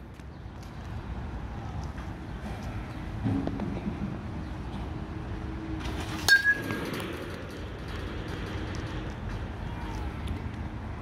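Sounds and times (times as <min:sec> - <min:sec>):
metal bat hitting ball: 0:06.2 - 0:07.3.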